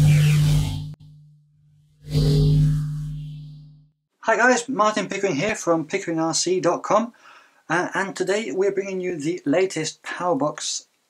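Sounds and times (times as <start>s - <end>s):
low sustained drone: 0.0s - 4.0s
rising whooshing swell: 1.9s - 3.9s.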